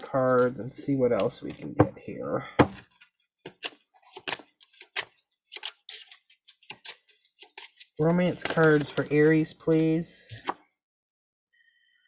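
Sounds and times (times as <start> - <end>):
cards being shuffled: 0.3 - 1.8, 2.6 - 10.6.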